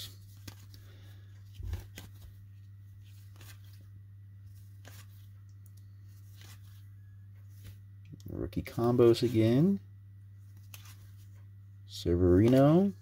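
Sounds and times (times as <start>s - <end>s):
trading cards being flipped: 0.0s - 7.9s, 10.5s - 11.4s, 12.3s - 12.9s
steady low hum: 0.0s - 13.0s.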